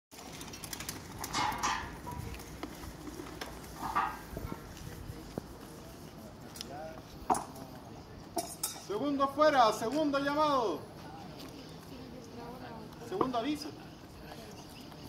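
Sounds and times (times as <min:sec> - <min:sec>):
faint voices: 0:01.6 - 0:15.0
scuffs on paving: 0:01.9 - 0:07.2.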